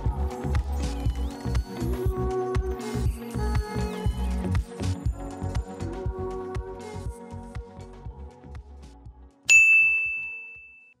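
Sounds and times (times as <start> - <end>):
background music: 0.0 - 10.2
bright high chime: 9.5 - 11.0.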